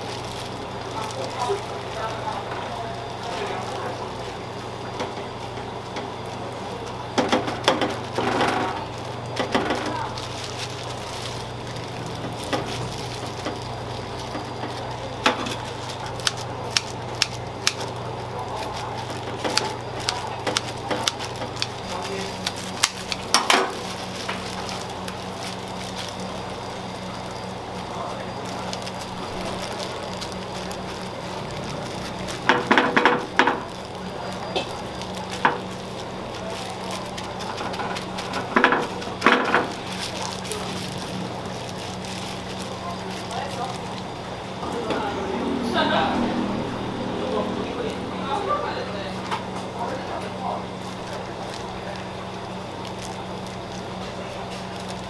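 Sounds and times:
rice sizzling on hot stone: 0:00.0 - 0:44.6, 0:49.4 - 0:55.0
steady low hum: 0:00.0 - 0:55.0.

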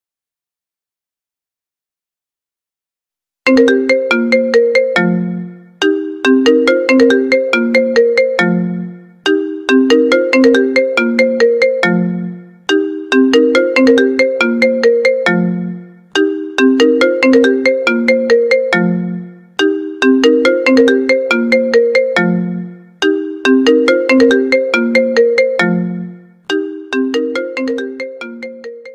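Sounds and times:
phone ringtone melody: 0:03.5 - 0:28.9.

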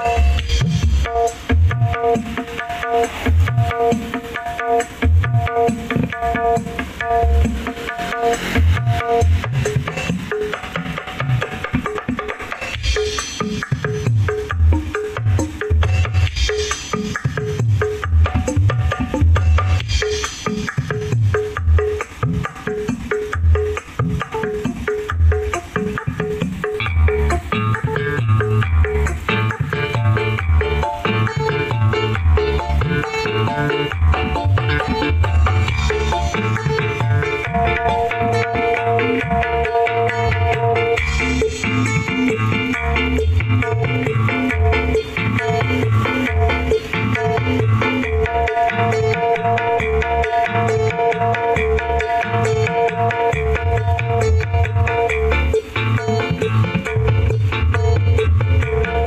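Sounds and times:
heavy bass beats: 0:00.0 - 0:12.0, 0:12.6 - 0:59.0
dance track with hand drums: 0:00.0 - 0:59.0.

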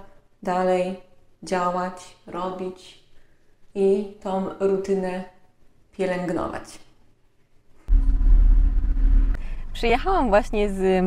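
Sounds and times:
low rumble with hum: 0:07.9 - 0:11.0.

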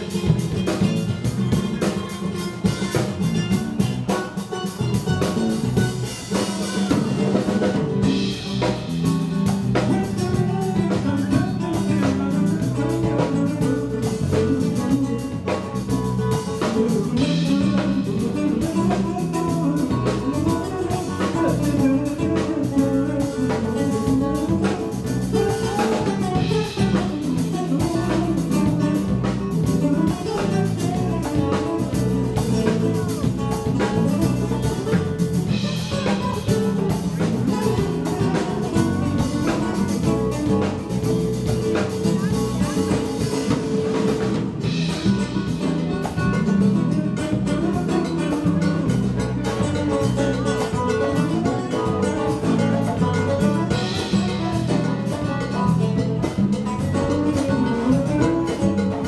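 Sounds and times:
congas: 0:00.0 - 0:59.0
drum kit with cymbals: 0:00.0 - 0:59.0
electric bass: 0:00.0 - 0:59.0
nylon-string acoustic guitars: 0:00.0 - 0:59.0.

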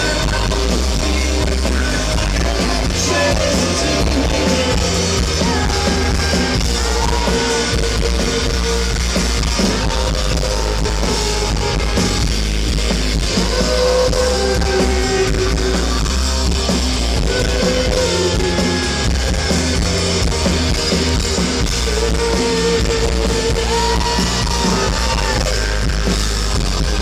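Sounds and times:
man singing: 0:00.0 - 0:08.8, 0:09.5 - 0:12.4, 0:13.1 - 0:16.2, 0:17.1 - 0:26.0
drum kit: 0:00.0 - 0:27.0
electric guitars: 0:00.0 - 0:27.0.

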